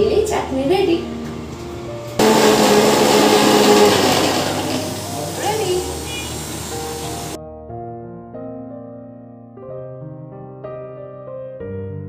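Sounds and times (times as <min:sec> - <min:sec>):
mixer grinder motor running: 0:02.2 - 0:07.4.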